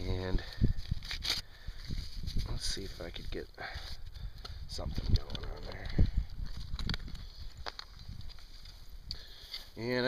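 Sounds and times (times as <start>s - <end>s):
dry grass and twigs crunching: 0.3s - 10.0s.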